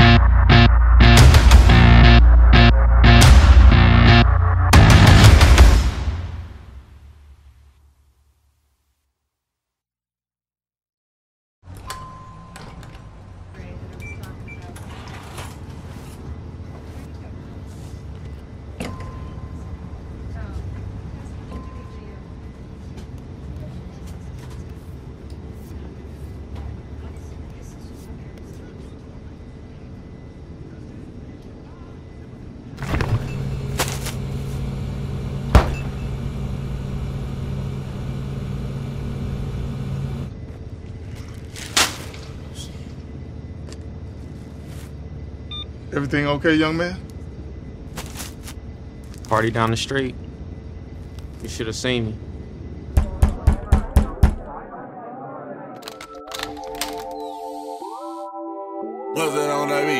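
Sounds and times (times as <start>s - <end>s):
steady low rumble: 0.0s - 6.8s, 32.1s - 41.1s
low rumbling ambience: 0.0s - 8.1s, 12.1s - 53.0s
short steady beep: 35.6s - 37.3s, 45.5s - 45.7s.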